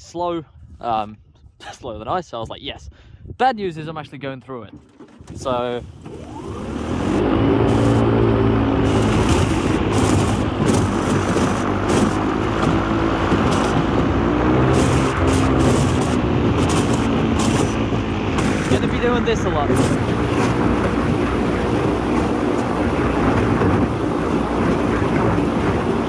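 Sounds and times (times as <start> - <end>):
airboat propeller engine: 4.7 - 26.0
ice cracking against hull: 8.8 - 21.2.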